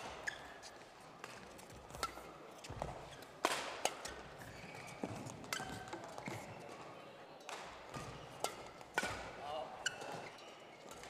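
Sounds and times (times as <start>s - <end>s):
shoe squeaking on court: 0.1s - 0.9s, 4.1s - 6.7s, 9.8s - 10.9s
rackets striking shuttlecock: 7.5s - 9.3s.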